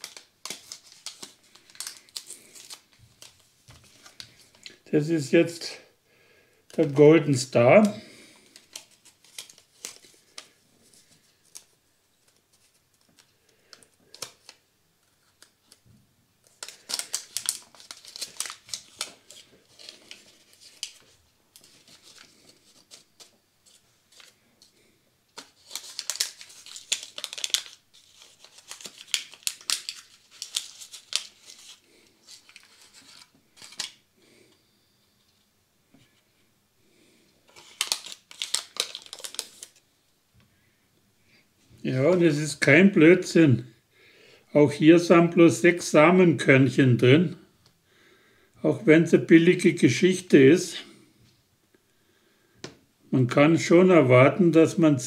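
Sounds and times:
paper packet rustling and tearing: 0.0 - 4.9, 6.7 - 15.8, 16.4 - 34.0, 37.5 - 39.9.

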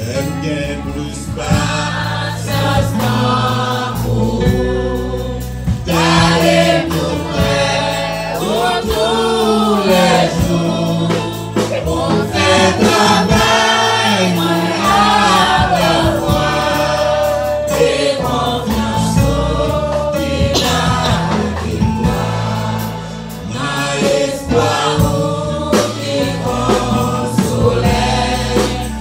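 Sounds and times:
man singing into a microphone: 0.0 - 1.9
congregation singing a hymn: 0.0 - 29.0.

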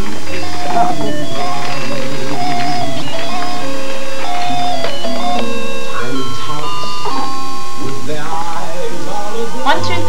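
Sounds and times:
electronic toy beeping tune: 0.3 - 8.0.

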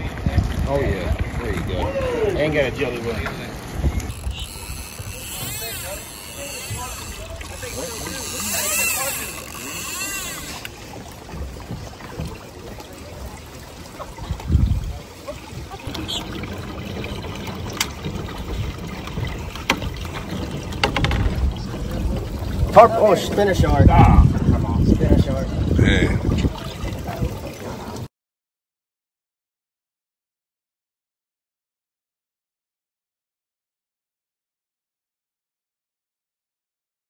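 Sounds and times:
people talking: 0.0 - 3.5, 5.4 - 9.5, 12.1 - 16.4, 21.4 - 28.1
wind and sea rushing: 0.0 - 28.1
low thump: 19.2 - 22.3.

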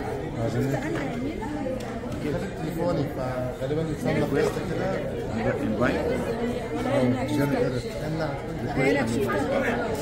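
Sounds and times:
overlapping indistinct conversation: 0.0 - 10.0.

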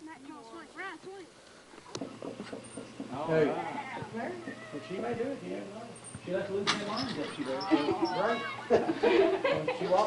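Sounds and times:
faint children calling out: 3.6 - 5.0, 7.4 - 8.9.

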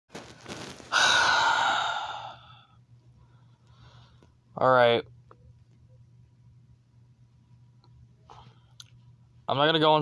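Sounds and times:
person sighing: 0.9 - 2.8
person breathing in: 0.9 - 4.2.

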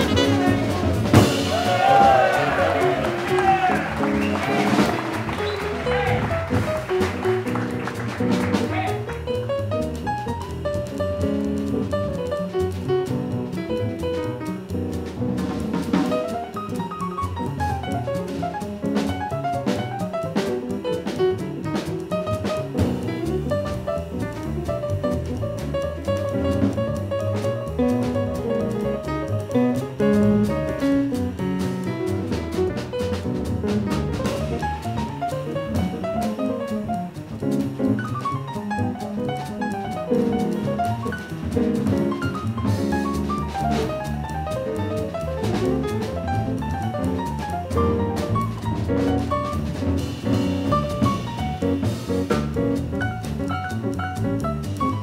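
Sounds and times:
drums on cymbals: 0.0 - 55.0
piano runs: 0.0 - 55.0
upright bass walking line: 0.0 - 55.0.

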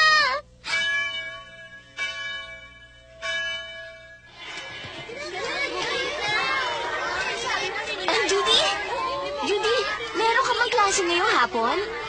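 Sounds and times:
tower clock bell tolling: 0.6 - 8.1.

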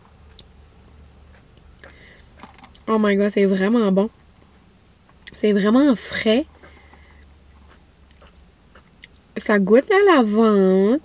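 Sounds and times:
low hum inside car cabin: 0.0 - 11.0.

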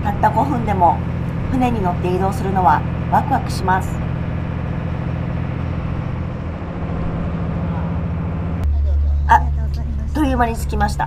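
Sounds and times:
ferry engine droning: 0.0 - 11.0.

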